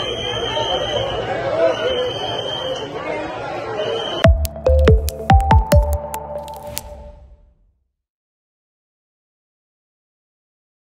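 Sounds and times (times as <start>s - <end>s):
electronic logo jingle: 4.2s - 7.4s.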